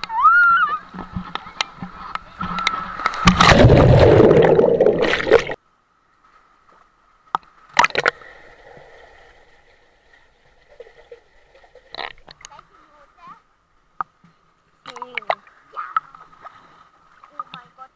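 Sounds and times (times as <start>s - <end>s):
water rushing and sloshing: 0.0s - 17.9s
sharp splashes: 0.8s - 5.6s.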